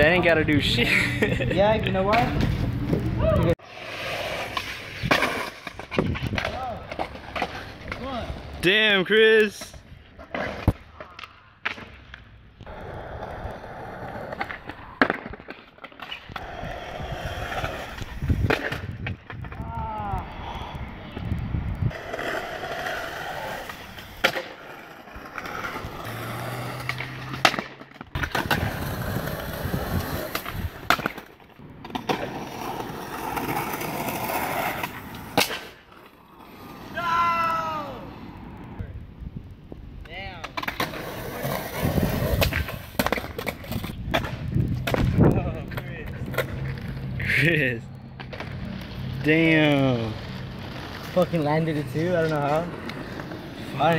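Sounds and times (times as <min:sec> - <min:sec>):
skateboard wheels rolling on asphalt: 0:00.0 - 0:53.9
skateboard wooden clacks: 0:42.3 - 0:47.0.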